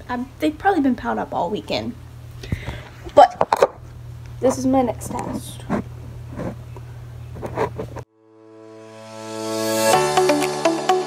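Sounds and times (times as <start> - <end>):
low steady hum: 0.0 - 8.0.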